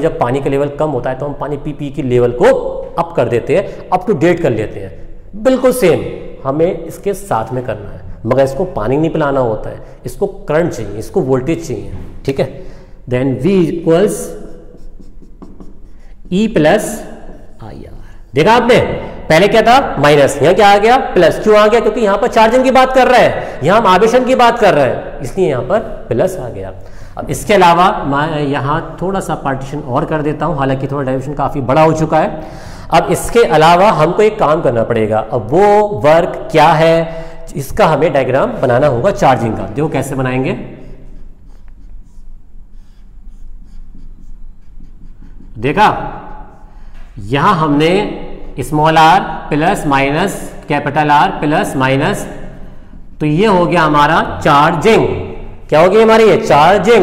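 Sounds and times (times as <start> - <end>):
man speaking: 0.0 - 40.8, 45.0 - 46.5, 47.2 - 52.6, 53.2 - 57.0
marker scratching on whiteboard: 14.1 - 17.9, 41.0 - 46.7.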